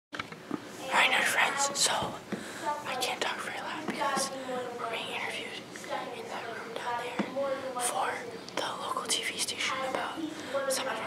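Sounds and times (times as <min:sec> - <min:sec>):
boy whispering: 0:00.8 - 0:11.0.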